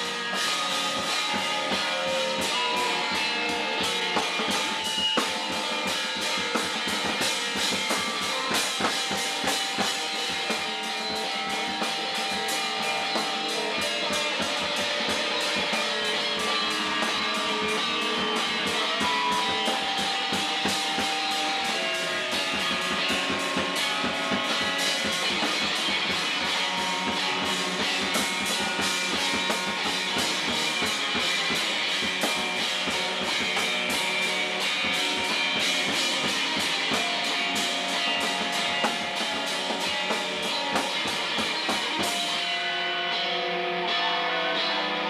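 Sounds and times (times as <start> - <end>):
held keyboard notes: 0.0 - 42.6
drums beating: 0.0 - 42.9
guitar: 0.0 - 45.0
rock band playing live: 0.0 - 45.0.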